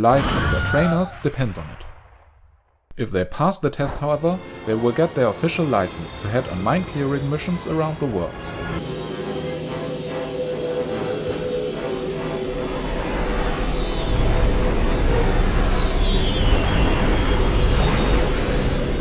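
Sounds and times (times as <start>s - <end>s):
starfighter engine rumble: 3.8s - 19.0s
sustained musical tone: 4.1s - 14.8s
falling whines of passing fighters: 4.8s - 19.0s.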